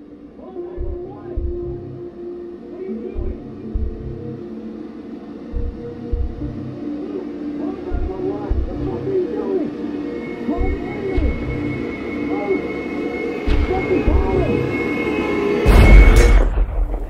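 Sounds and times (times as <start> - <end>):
low drone tones: 0.0 - 17.0
deep low thumps: 0.8 - 2.0, 3.2 - 4.2, 5.5 - 6.7, 7.9 - 8.9, 10.6 - 11.6.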